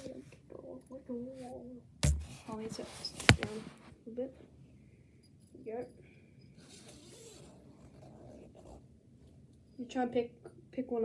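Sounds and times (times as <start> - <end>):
mesh fabric rustling: 2.0 - 3.9.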